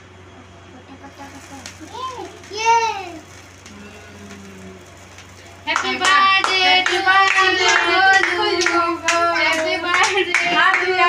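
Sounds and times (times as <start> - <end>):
voices singing along: 5.5 - 11.0
people clapping in rhythm: 5.6 - 11.0.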